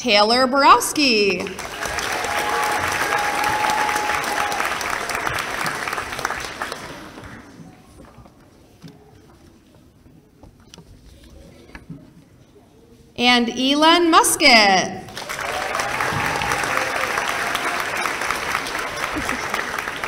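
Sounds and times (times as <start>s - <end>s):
audience applauding: 1.4s - 7.5s, 15.1s - 20.0s.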